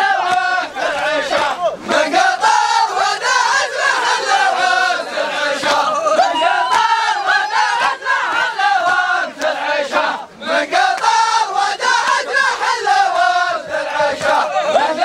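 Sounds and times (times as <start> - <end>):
men chanting in unison: 0.0 - 15.0
sharp rhythmic beats: 0.0 - 15.0.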